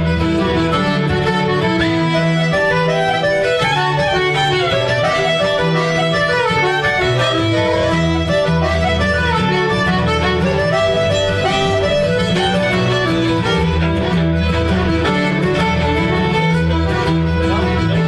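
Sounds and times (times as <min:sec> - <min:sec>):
fiddle and accordion melody: 0:00.0 - 0:18.0
strummed acoustic guitar: 0:00.0 - 0:18.0.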